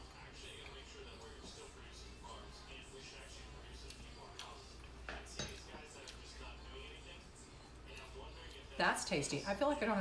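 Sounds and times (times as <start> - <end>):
glassware clinking: 5.1 - 5.7.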